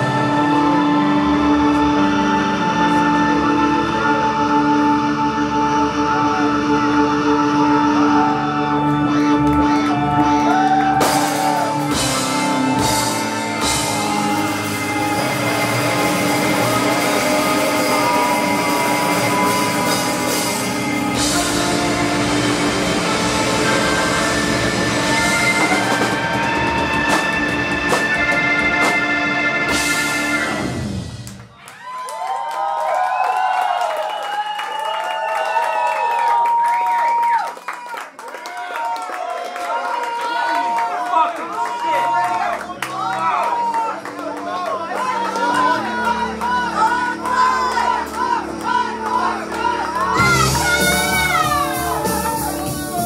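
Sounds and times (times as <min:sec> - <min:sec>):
rock band guitar drone: 0:00.0 - 0:31.5, 0:45.2 - 0:53.0.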